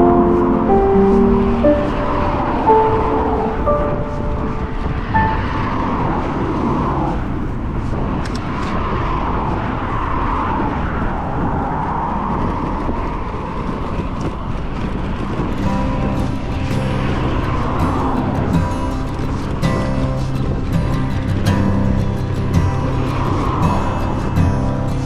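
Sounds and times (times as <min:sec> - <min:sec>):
soft musical notes: 0:00.0 - 0:06.1, 0:15.6 - 0:25.0
cars passing: 0:00.0 - 0:25.0
wind and road noise: 0:00.0 - 0:25.0.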